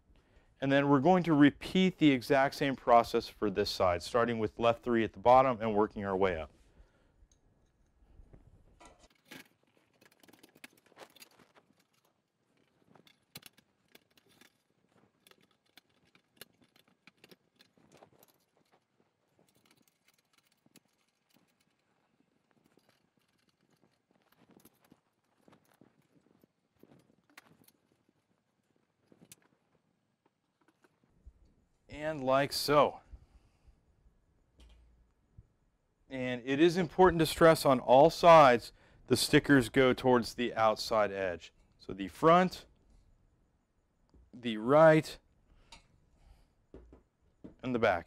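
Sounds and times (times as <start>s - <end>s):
faint clicks and metallic clinks: 7.1s - 31.8s, 45.2s - 48.0s.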